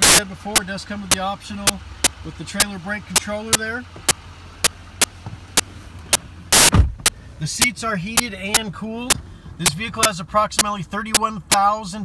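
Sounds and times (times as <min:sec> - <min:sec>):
sharp ticking: 0:00.0 - 0:12.0.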